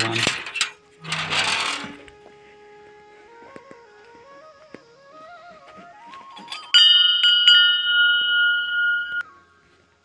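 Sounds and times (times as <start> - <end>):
soft flute music: 1.8 - 7.3, 9.1 - 10.0.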